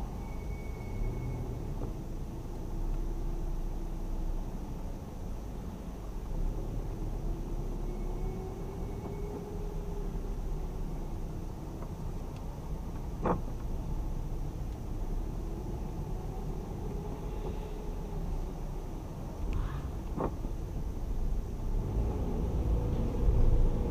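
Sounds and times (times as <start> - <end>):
car engine and tyres rumbling: 0.0 - 23.9.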